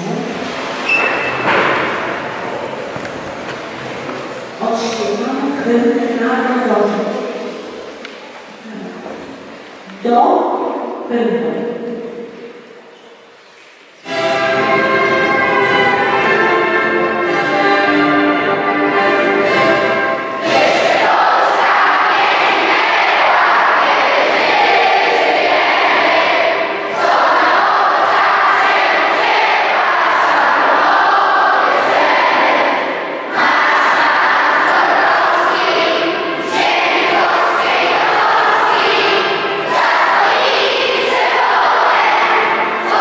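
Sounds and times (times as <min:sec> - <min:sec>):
children and adults singing together: 0:14.0 - 0:43.0.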